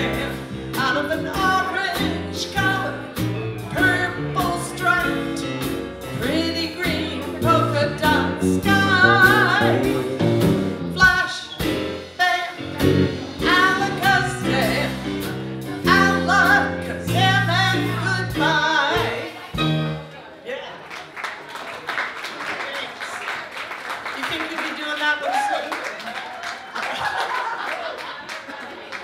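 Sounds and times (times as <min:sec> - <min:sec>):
woman singing: 0:00.0 - 0:05.6, 0:06.2 - 0:10.1, 0:12.2 - 0:19.6
electric bass line: 0:00.0 - 0:11.1, 0:12.7 - 0:20.0
drum kit: 0:00.0 - 0:20.1.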